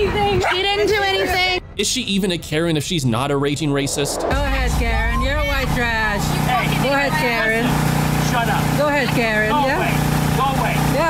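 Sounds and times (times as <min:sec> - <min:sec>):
woman arguing: 0:00.0 - 0:01.6, 0:04.6 - 0:07.8
steady low hum: 0:02.8 - 0:10.4
man arguing: 0:06.4 - 0:11.0.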